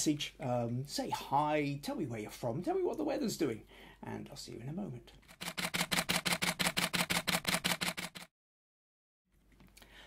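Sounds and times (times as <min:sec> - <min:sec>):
rapid camera shutter clicks: 0:05.3 - 0:08.3.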